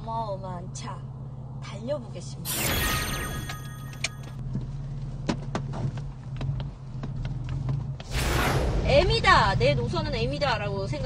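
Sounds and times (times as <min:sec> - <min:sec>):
loud rushing noise: 0:08.1 - 0:09.1.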